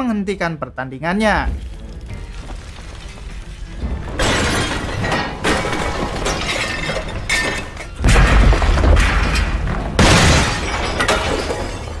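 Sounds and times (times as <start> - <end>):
objects crashing: 1.5 - 12.0
glass shattering: 1.7 - 12.0.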